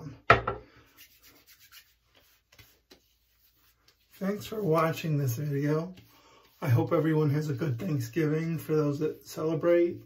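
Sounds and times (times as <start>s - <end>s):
hands rubbing skin: 0.7s - 10.0s.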